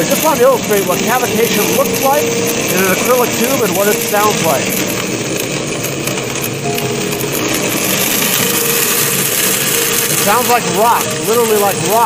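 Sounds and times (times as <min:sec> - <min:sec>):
pump cavitating with crackling rattle: 0:00.0 - 0:12.0.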